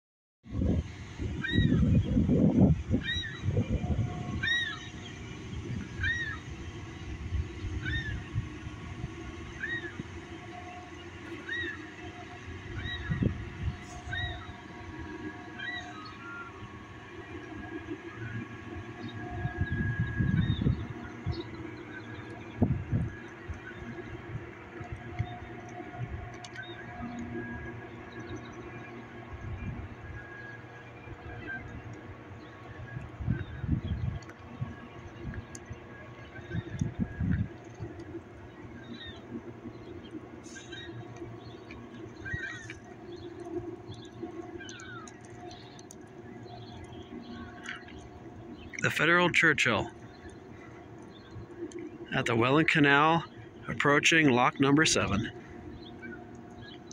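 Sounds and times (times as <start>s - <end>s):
wind rumbling on microphone: 0.5s - 48.9s, 49.9s - 52.2s
ship engines droning: 0.5s - 56.9s.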